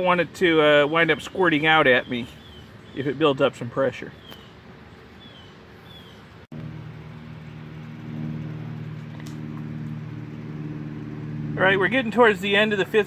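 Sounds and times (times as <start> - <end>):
low engine hum: 4.3 - 13.0.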